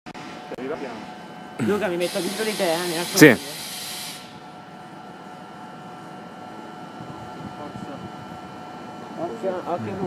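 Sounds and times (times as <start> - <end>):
railway platform background noise: 0.2 - 9.8
loud hiss: 2.0 - 4.4.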